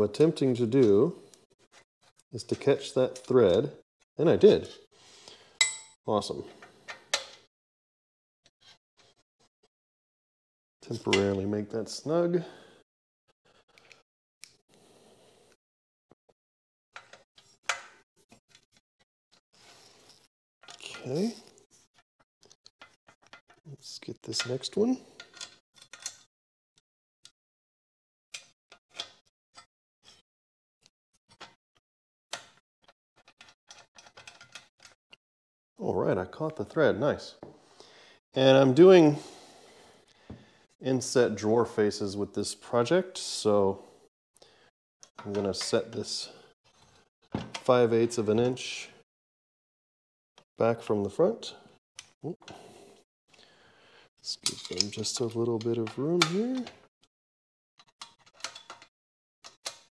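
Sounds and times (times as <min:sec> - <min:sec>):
metallic clicks of screw turning: 0:58.0 - 0:59.9.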